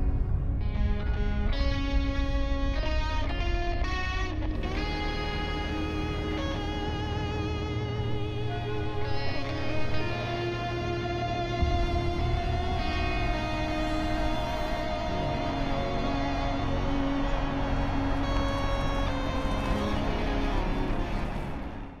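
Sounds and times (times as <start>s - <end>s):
slow sombre instrumental music: 0.0s - 22.0s.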